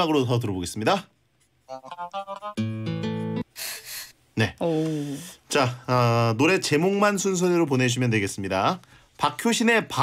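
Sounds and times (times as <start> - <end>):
plucked notes: 1.7 - 3.4.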